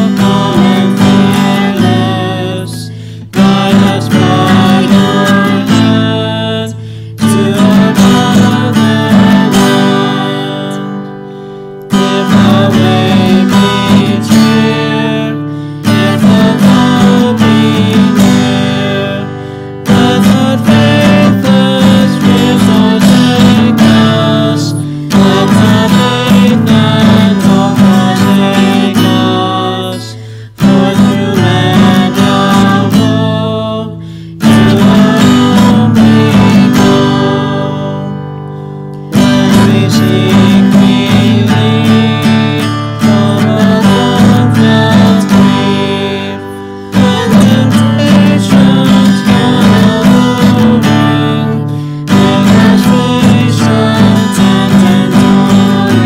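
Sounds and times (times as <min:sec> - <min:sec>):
man and woman singing a hymn: 0:00.0 - 0:38.2, 0:39.1 - 0:56.0
strummed acoustic guitar: 0:00.0 - 0:56.0.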